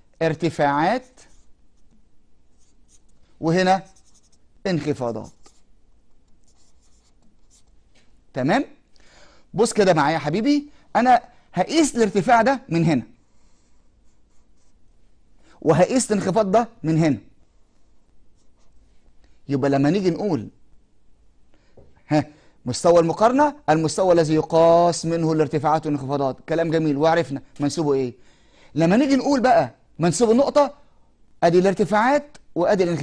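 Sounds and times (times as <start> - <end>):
marker scratching on paper: 0.2 - 7.9, 13.4 - 14.9.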